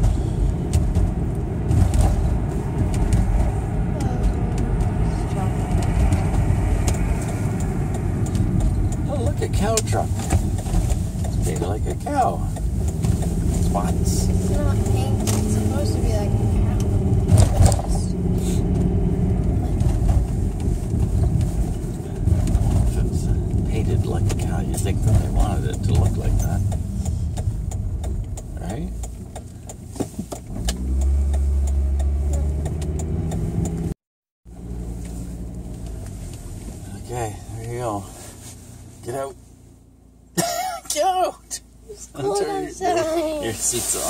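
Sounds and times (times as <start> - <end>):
low rumble: 0.0 - 29.6
car engine and tyres droning: 0.0 - 44.0
person speaking: 40.9 - 44.0.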